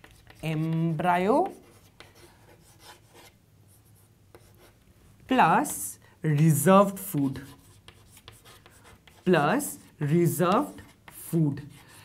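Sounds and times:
chalk scratching on blackboard: 0:00.0 - 0:04.8, 0:05.6 - 0:12.0.

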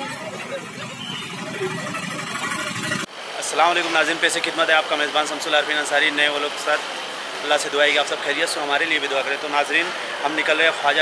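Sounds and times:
faint voices of passers-by: 0:00.0 - 0:03.1
vehicle engines running: 0:00.0 - 0:03.1.

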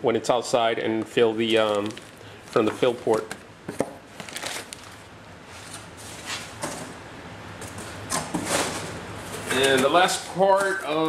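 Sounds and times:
cardboard boxes scraping and rustling: 0:08.1 - 0:11.0.

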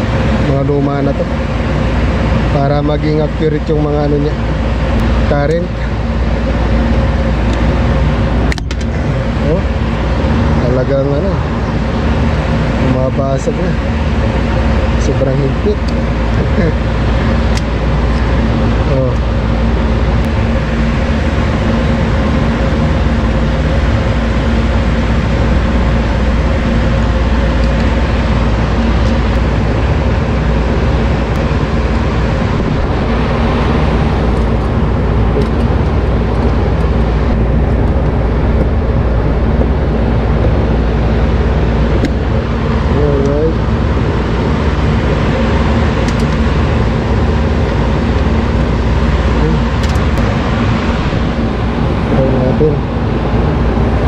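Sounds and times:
machinery drone with low hum: 0:00.0 - 0:54.0.

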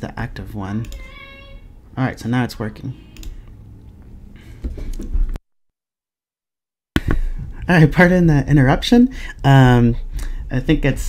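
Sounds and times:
click: 0:03.2 - 0:03.4.

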